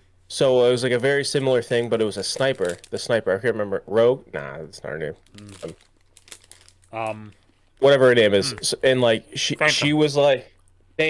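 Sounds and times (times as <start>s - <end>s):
crinkling and clicking: 5.2s - 7.9s
person speaking: 5.3s - 5.8s, 7.0s - 10.2s.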